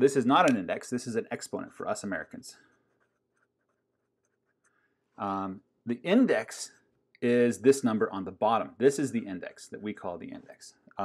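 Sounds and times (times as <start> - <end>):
marker scratching on paper: 2.6 - 4.7.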